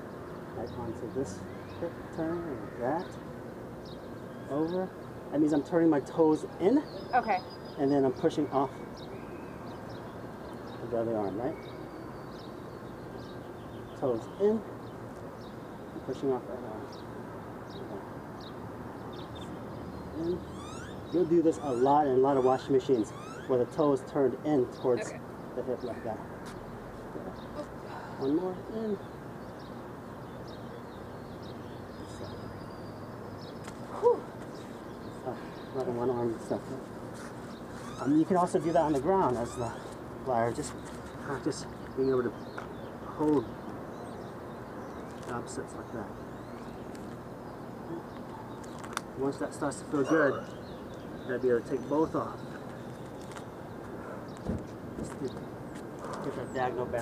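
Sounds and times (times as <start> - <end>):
outdoor background noise: 0.0 - 57.0
small birds chirping: 0.0 - 57.0.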